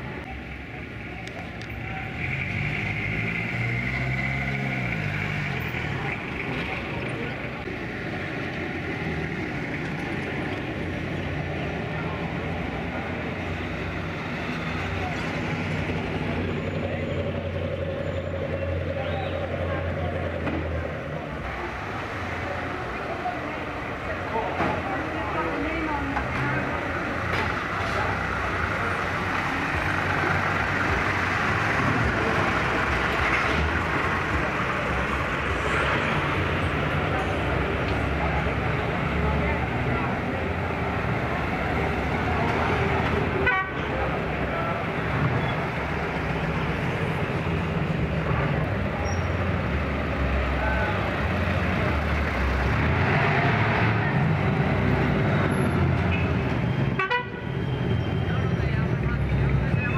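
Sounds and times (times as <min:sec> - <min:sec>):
car engines rumbling: 0:00.0 - 0:59.9
car horns tooting: 0:43.4 - 0:44.0, 0:56.9 - 0:58.4.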